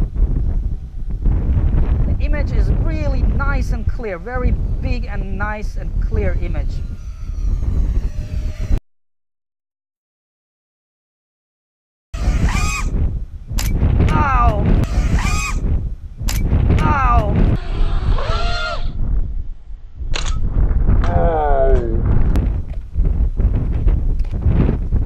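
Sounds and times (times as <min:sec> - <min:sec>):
wind buffeting microphone: 0:00.0 - 0:08.8, 0:12.2 - 0:25.0
man's voice with swooping pitch: 0:21.1 - 0:22.1.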